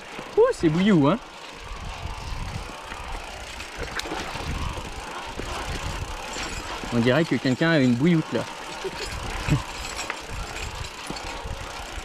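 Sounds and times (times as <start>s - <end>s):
bike clicks and rattles: 0.0s - 12.0s
mountain bikes on rocky trail: 0.0s - 12.0s.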